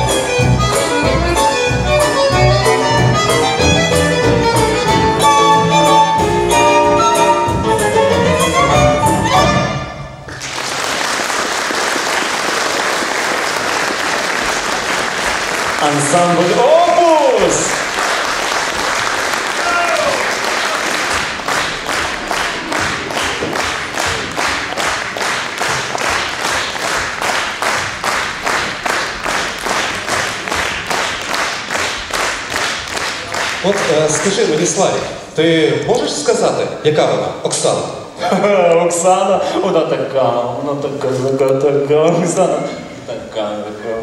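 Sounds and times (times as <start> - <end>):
audience applauding: 10.3 - 34.9
rhythmic clapping in unison: 10.3 - 34.9.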